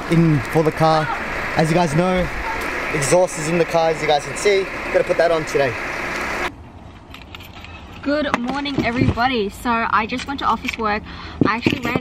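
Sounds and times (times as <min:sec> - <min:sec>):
outdoor hiss: 0:00.0 - 0:06.5.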